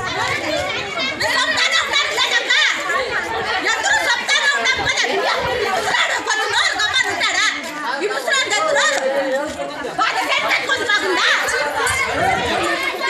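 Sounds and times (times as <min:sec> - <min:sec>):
overlapping voices talking: 0:00.0 - 0:13.0.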